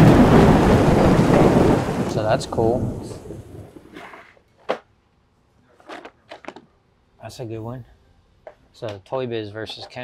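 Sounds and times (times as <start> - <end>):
thunder crack: 0.0 - 3.9
thunder rumble: 0.0 - 4.0.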